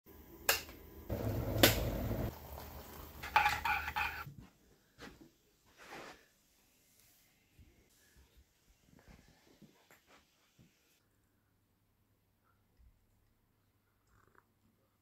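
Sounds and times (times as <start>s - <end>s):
kettle rushing noise: 1.1s - 4.2s.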